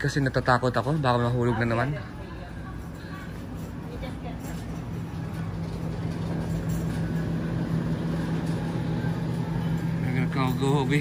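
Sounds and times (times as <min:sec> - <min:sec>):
low hum with rumbling: 0:00.0 - 0:11.0.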